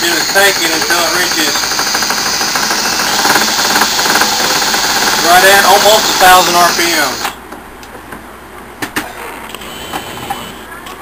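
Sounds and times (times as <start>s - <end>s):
alternator spinning with fast rattle: 0.0s - 7.3s.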